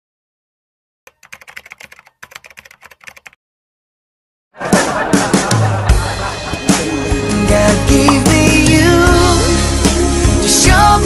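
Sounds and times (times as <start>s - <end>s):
rapid keyboard typing clicks: 1.1s - 3.4s.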